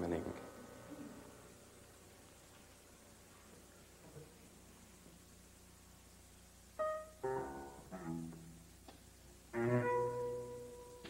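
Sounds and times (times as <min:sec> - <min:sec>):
grand piano notes and chords: 0:06.6 - 0:11.0.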